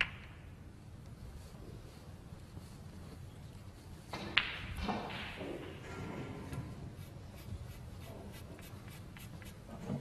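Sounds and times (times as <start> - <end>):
faint scratchy rustling: 0.9 - 4.1.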